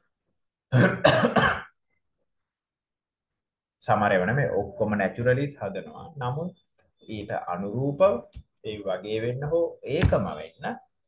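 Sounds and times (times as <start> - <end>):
man coughing: 0.7 - 1.8.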